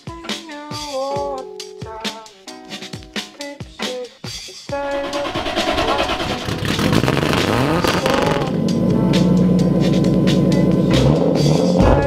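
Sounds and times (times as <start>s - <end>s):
turbocharged car engine revving: 4.8s - 12.0s.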